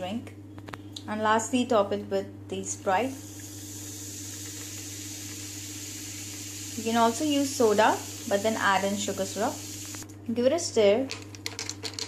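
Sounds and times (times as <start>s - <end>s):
soda fizzing in a glass: 3.2s - 10.0s.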